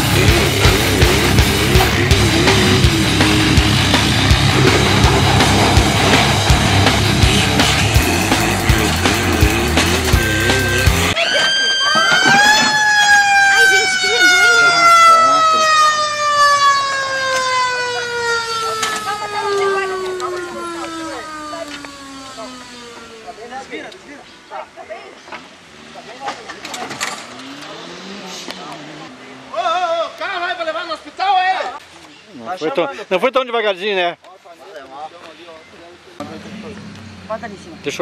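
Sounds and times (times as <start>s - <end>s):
heavy rock music with vocals: 0.0s - 11.2s
siren winding: 11.2s - 14.6s, 15.8s - 23.4s.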